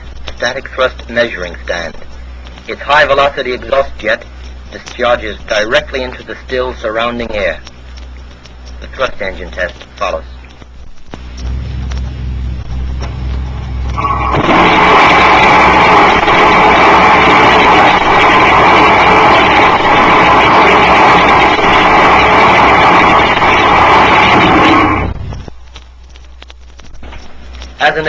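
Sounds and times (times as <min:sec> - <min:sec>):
low hum: 0:00.0 - 0:28.0
rocket engine firing: 0:11.2 - 0:25.5.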